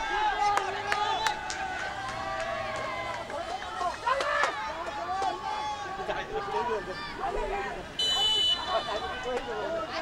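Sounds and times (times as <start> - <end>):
players shouting and calling: 0.0 - 10.0.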